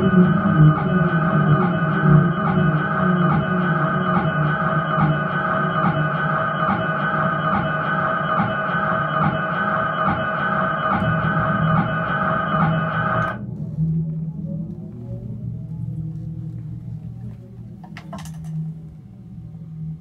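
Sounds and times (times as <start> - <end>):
electric guitar droning chord: 0.0 - 13.5
pulsing low line: 0.0 - 17.8.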